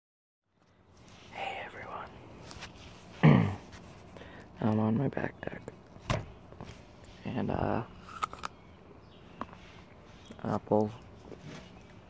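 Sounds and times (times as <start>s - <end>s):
man whispering: 1.1s - 2.5s.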